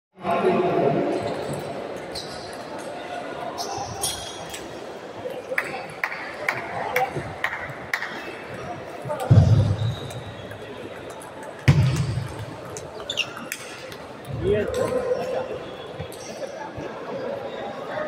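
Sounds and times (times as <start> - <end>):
echoing hum of voices: 0.2 - 18.0.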